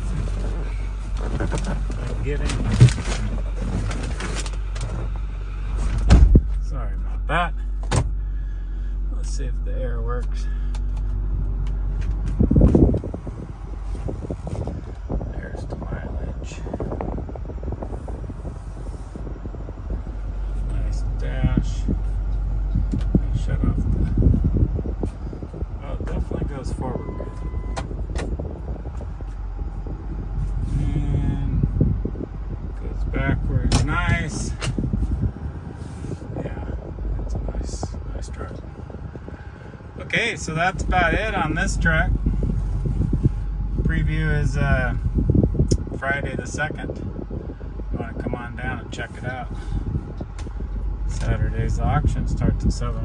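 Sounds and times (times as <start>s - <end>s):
diesel truck engine rumble: 0.0s - 53.0s
short steady tone: 26.8s - 28.0s.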